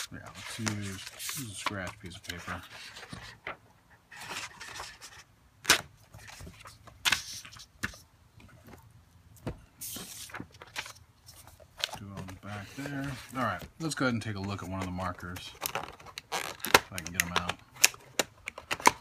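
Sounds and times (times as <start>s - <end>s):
paper rustling: 0.0s - 5.2s, 9.4s - 17.5s
hands handling cardboard box: 0.0s - 19.0s.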